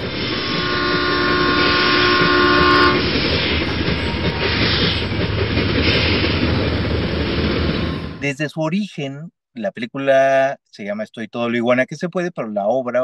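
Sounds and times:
train horn: 0.0s - 3.1s
train rumbling: 0.0s - 9.0s.

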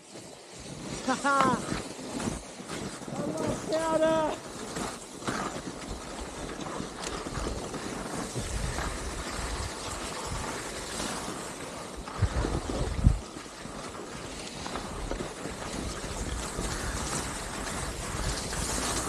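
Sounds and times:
skis sliding over snow: 0.0s - 19.0s
wind buffeting microphone: 0.7s - 19.0s.

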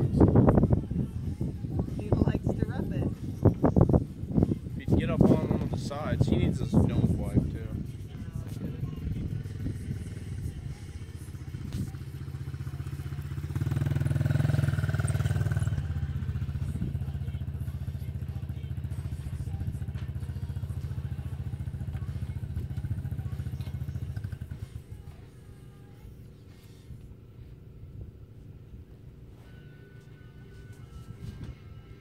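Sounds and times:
dirt bike engine running: 0.0s - 32.0s.

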